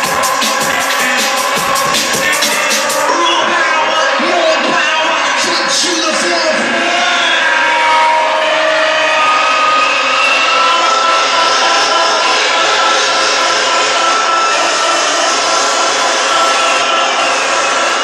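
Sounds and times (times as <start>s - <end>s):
loud electronic dance music: 0.0s - 18.0s.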